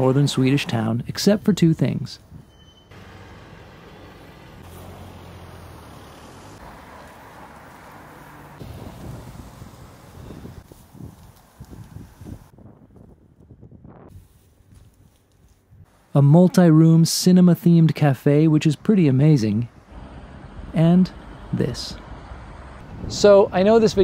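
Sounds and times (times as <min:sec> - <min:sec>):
street ambience: 0:00.0 - 0:24.0
engine hum of passing vehicles: 0:02.4 - 0:12.5, 0:18.0 - 0:24.0
car driving past: 0:02.9 - 0:10.6, 0:19.7 - 0:23.1.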